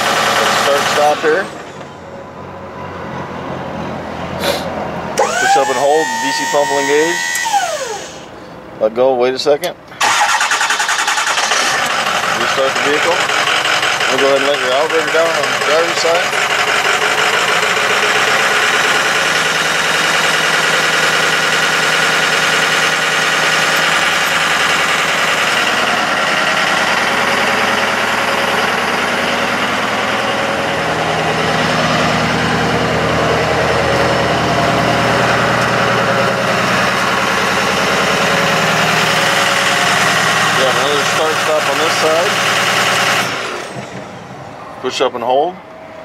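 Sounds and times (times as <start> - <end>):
truck engine idling: 0.0 - 6.4, 9.8 - 46.0
hydraulic pump whine: 0.0 - 8.6, 9.9 - 46.0
deep hum: 19.8 - 40.6.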